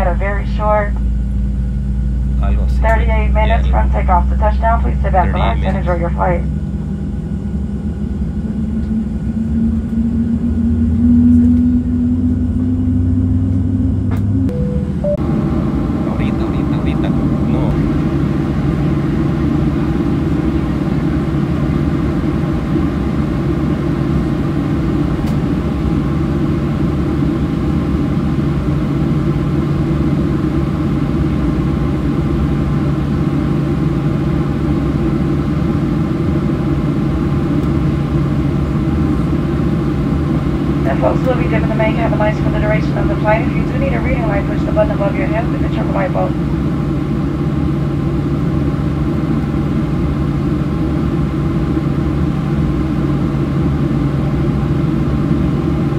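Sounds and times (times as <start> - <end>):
airplane cabin drone: 0.0 - 55.9.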